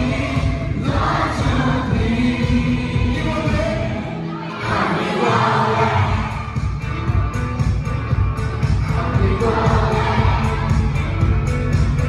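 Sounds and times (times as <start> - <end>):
live amplified music with heavy bass: 0.0 - 12.0.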